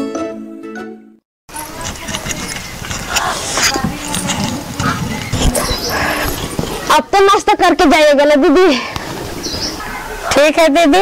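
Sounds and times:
rustling: 1.5 - 7.0
woman speaking loudly: 6.9 - 8.8, 10.3 - 11.0.

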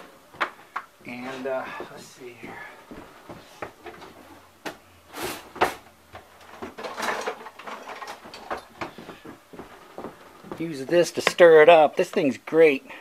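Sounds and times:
kitchen items knocking and clicking: 5.5 - 11.5.

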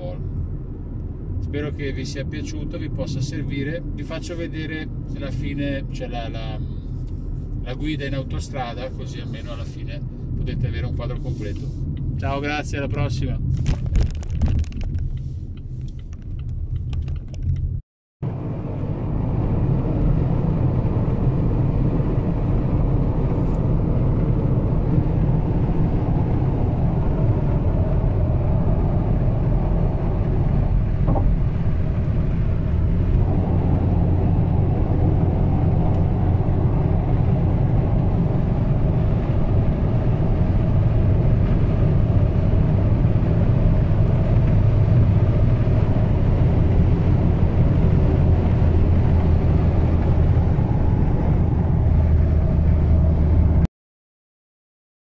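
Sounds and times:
diesel engine drone in car cabin: 0.0 - 53.7
wind noise: 13.3 - 17.8, 18.4 - 53.6.

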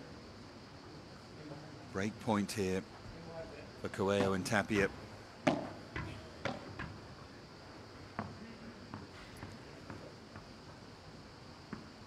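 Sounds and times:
ball bouncing on court: 4.2 - 7.0, 8.2 - 10.8.

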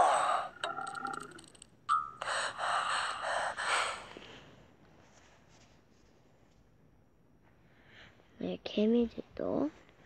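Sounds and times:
breathy gasping sounds: 0.0 - 1.0.

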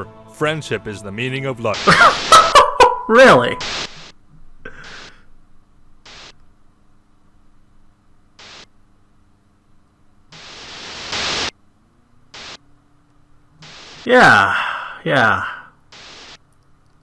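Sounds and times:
faint steady hum: 0.0 - 17.0
hissing static bursts: 1.6 - 5.3, 6.0 - 6.4, 8.4 - 8.7, 10.3 - 11.6, 12.3 - 12.7, 13.6 - 14.5, 15.1 - 16.6.

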